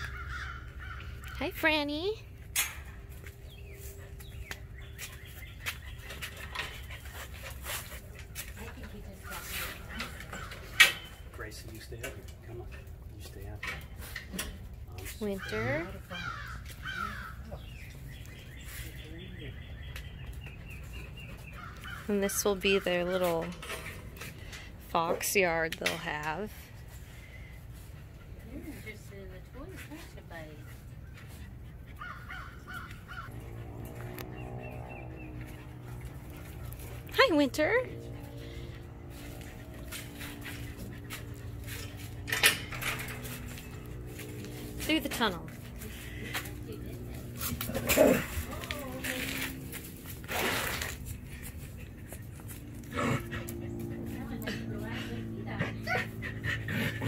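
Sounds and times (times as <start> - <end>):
harsh bird calls: 0.0 - 1.4, 15.2 - 23.4
birds calling: 0.0 - 57.0
dog panting: 3.5 - 10.8, 26.5 - 37.2, 37.8 - 42.4, 51.1 - 57.0
steady low hum: 19.8 - 57.0.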